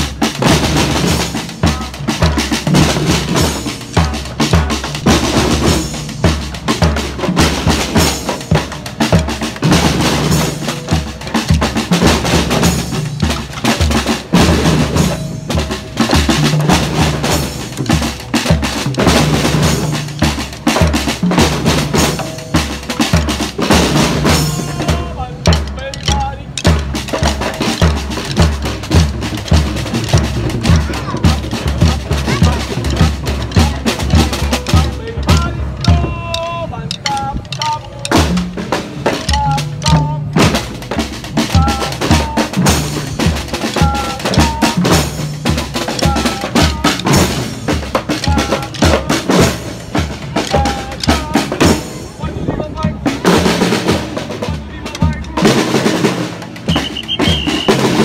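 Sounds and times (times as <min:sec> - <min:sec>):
deeper drum beats: 0:00.0 - 0:58.0
marching snare drums: 0:00.0 - 0:58.0.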